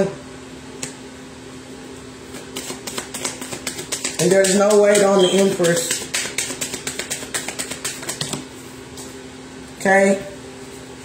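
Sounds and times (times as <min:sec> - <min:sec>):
cards being shuffled: 0:02.3 - 0:08.5.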